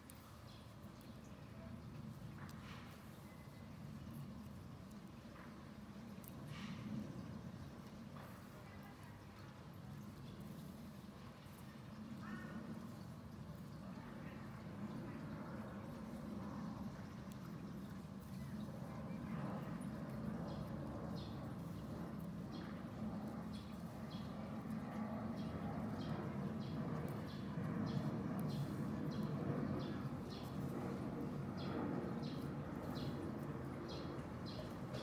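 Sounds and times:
low background hum: 0:00.0 - 0:35.0.

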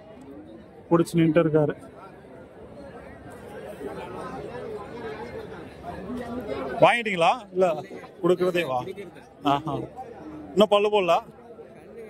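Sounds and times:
chatter of many people: 0:00.0 - 0:12.0.

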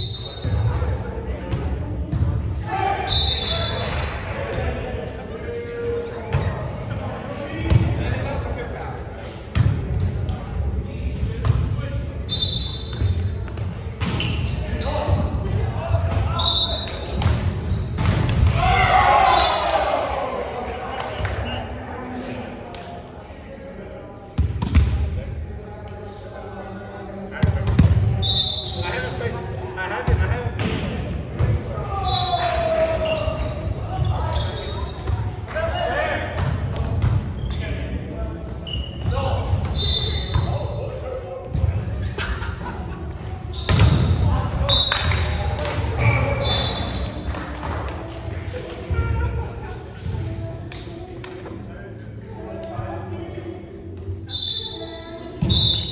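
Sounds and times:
shoe squeaks: 0:00.0 - 0:00.9, 0:03.0 - 0:04.1, 0:06.8 - 0:10.6, 0:12.2 - 0:18.3, 0:21.4 - 0:22.9, 0:25.3 - 0:27.3, 0:28.2 - 0:29.2, 0:30.9 - 0:45.1, 0:45.9 - 0:51.2, 0:51.9 - 0:52.6, 0:53.2 - 0:55.9
players shouting calls: 0:02.6 - 0:04.8, 0:18.5 - 0:21.7, 0:31.5 - 0:36.4.

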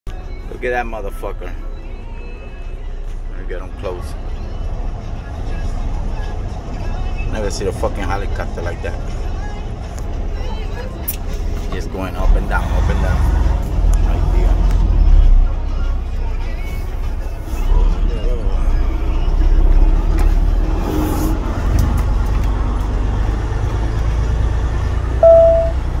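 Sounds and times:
short high beep: 0:25.2 - 0:25.9.

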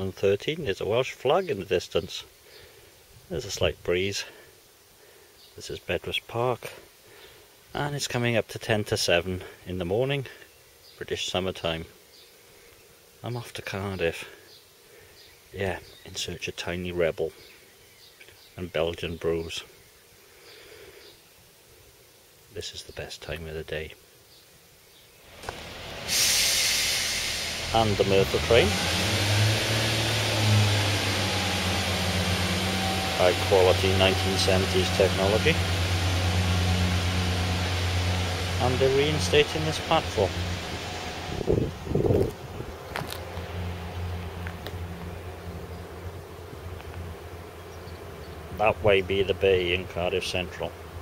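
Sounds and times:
outdoor ambience: 0:00.0 - 0:51.0
diesel train hissing and humming: 0:25.3 - 0:51.0.

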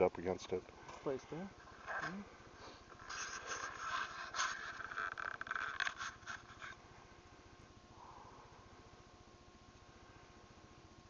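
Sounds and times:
brush scraping against clothing: 0:03.0 - 0:06.8.

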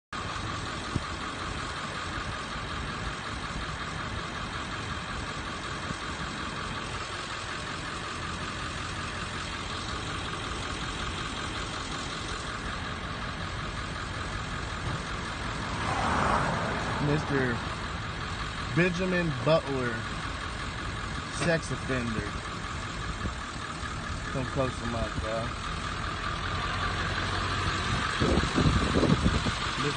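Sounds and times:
engine idling: 0:00.1 - 0:29.9.

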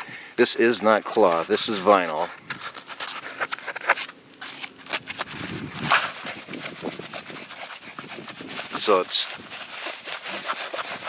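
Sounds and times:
vinyl sheet crackling and rustling: 0:00.4 - 0:11.0.

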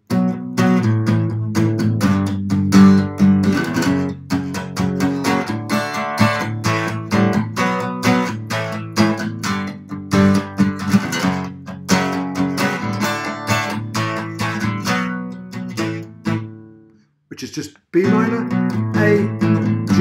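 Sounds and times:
acoustic guitar strumming: 0:00.0 - 0:17.0, 0:18.0 - 0:20.0.

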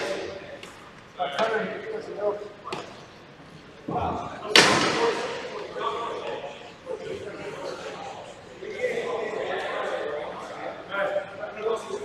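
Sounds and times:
loud sharp echoing crack: 0:04.5 - 0:05.6.

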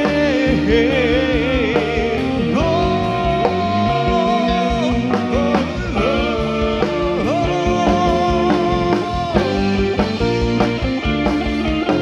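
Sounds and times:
person singing: 0:00.0 - 0:10.2
live rock band playing: 0:00.0 - 0:12.0.

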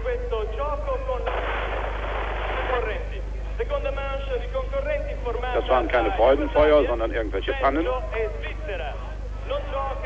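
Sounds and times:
burst of crackling noise: 0:01.3 - 0:03.0.

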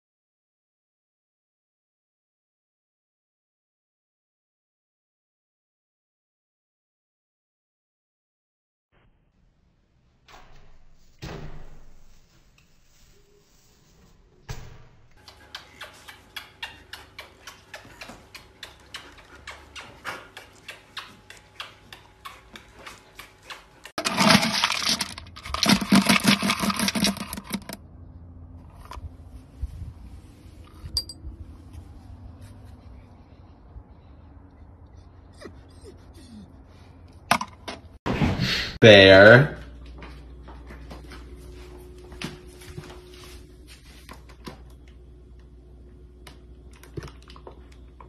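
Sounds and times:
dry kibble pouring and rattling: 0:24.0 - 0:27.8.

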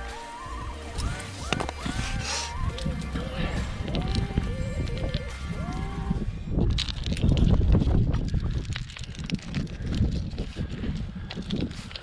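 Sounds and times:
background music with melody: 0:00.0 - 0:06.1
metallic clicks of climbing gear: 0:06.5 - 0:12.0.

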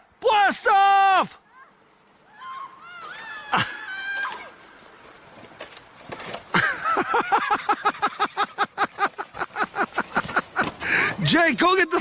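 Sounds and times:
person laughing hard: 0:06.5 - 0:11.2.

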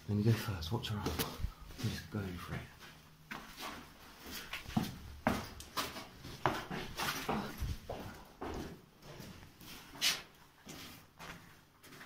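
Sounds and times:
hurried footsteps on stairs: 0:00.3 - 0:12.0
knocks and scuffs: 0:00.3 - 0:12.0.

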